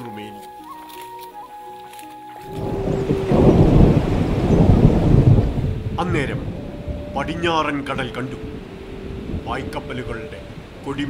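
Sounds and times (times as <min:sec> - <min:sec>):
soft background music: 0:00.0 - 0:11.0
loud crackling rumble: 0:02.3 - 0:11.0.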